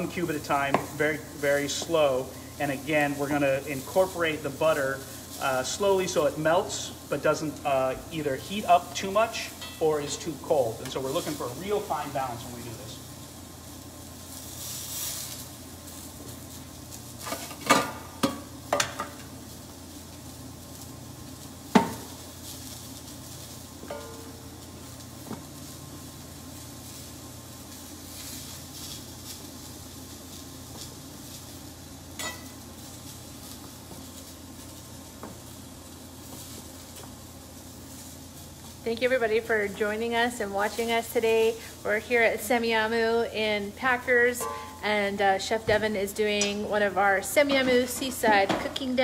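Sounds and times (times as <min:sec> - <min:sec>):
fish sizzling in a frying pan: 0:00.0 - 0:49.0.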